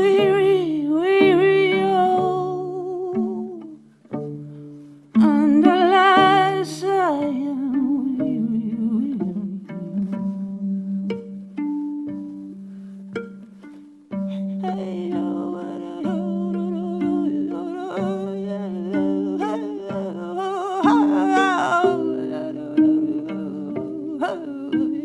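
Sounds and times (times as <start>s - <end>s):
viola plucked pizzicato: 0.0s - 25.0s.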